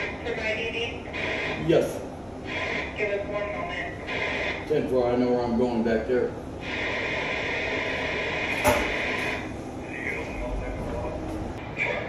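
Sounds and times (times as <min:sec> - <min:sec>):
hissy radio transmission: 0:00.0 - 0:12.0
man talking into radio handset: 0:09.8 - 0:12.0.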